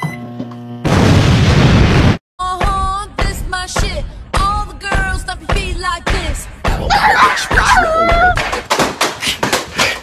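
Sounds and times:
microwave oven humming: 0.0s - 0.9s
loud explosion boom: 0.9s - 2.2s.

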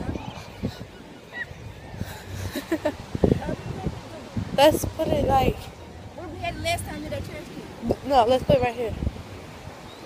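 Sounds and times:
woman laughing: 2.0s - 3.1s.

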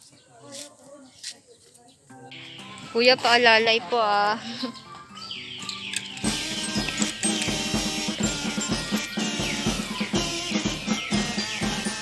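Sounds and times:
background music with drum beat: 5.0s - 12.0s.

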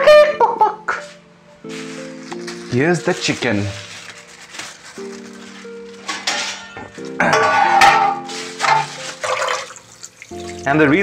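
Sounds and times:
background music with held notes: 0.0s - 11.0s
tap water gushing: 8.6s - 10.8s.

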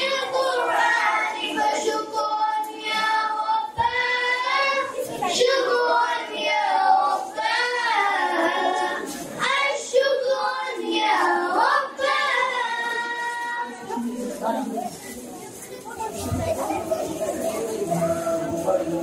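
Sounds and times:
children singing: 0.0s - 14.1s, 16.7s - 19.0s.

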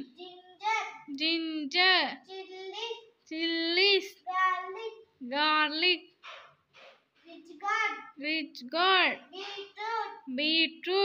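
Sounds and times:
girl chanting in singsong: 7.7s - 11.0s.

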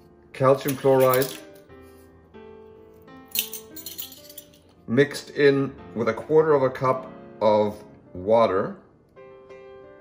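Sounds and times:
background music held notes: 0.0s - 10.0s
metal measuring spoons clinking: 0.6s - 1.7s, 3.3s - 4.7s.

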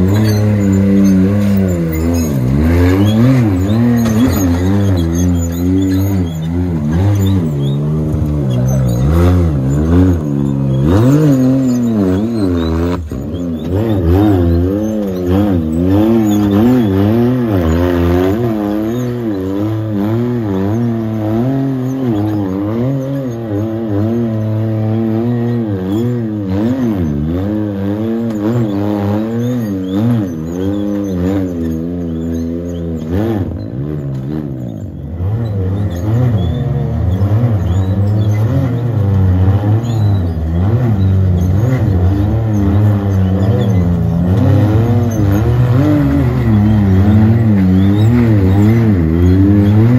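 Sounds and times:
engine revving up and down: 0.0s - 49.9s.

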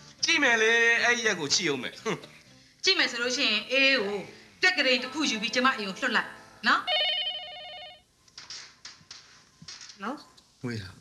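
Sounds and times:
telephone ringer trilling: 6.9s - 8.0s.

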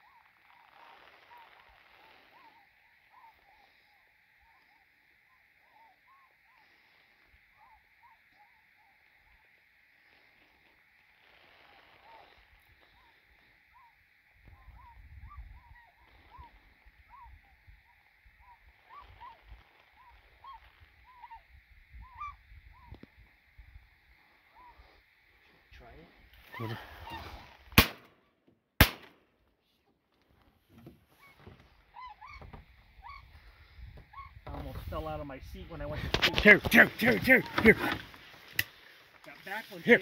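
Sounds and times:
swans calling in flight: 0.0s - 9.5s, 12.0s - 23.2s, 31.1s - 34.4s
wind rumble on microphone: 14.4s - 15.8s
shotgun shots: 27.8s - 28.2s, 28.8s - 29.2s.

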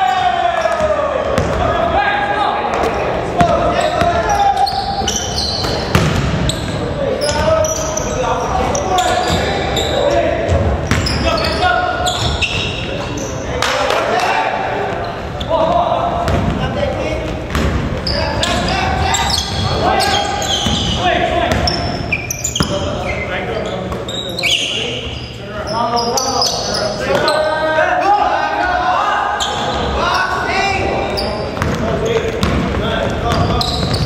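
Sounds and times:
players calling out: 0.0s - 34.0s
sneaker squeaks: 3.4s - 13.6s, 14.8s - 16.6s, 17.2s - 27.6s, 29.3s - 34.0s
basketball bouncing on wooden floor: 32.4s - 34.0s.

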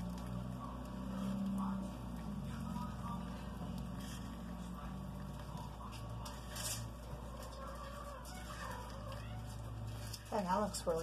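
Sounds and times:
steady low hum: 0.0s - 11.0s
spatula scraping frosting in cup: 5.8s - 11.0s.

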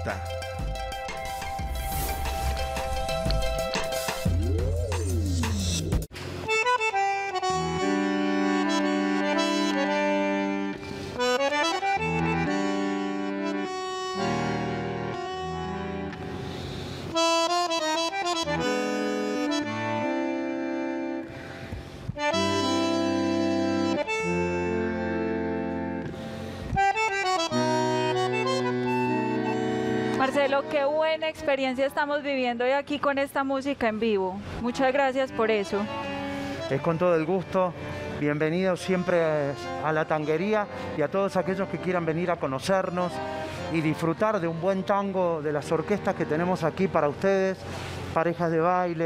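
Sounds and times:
bandoneon playing tango chords: 0.0s - 49.0s.

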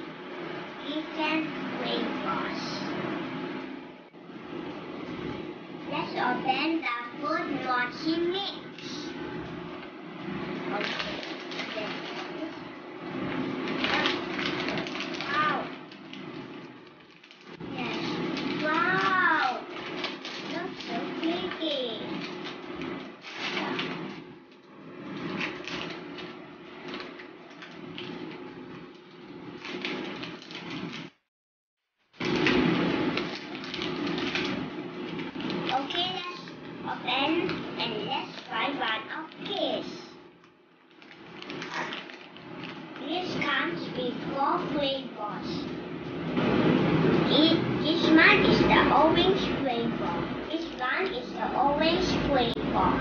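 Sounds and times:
plastic packaging crinkling: 10.7s - 12.6s, 13.6s - 24.2s, 25.2s - 31.1s, 32.2s - 40.0s, 40.8s - 43.4s.

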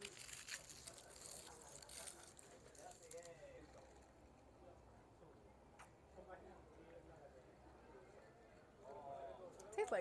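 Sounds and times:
plastic wrapper crinkling: 0.0s - 3.4s
faint voices: 0.0s - 10.0s.

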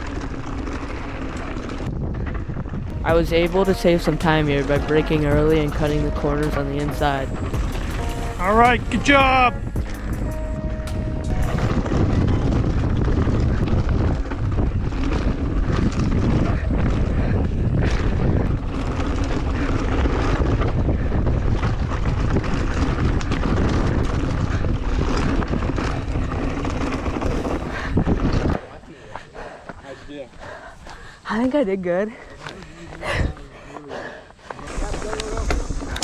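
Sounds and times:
bike rattling over rough trail: 0.0s - 36.0s
wind buffeting microphone: 0.0s - 36.0s.

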